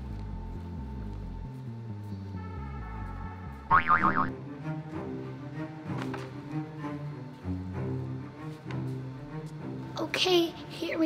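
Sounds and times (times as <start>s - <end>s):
background music: 0.0s - 11.0s
cartoon boing sound effect: 3.7s - 4.3s.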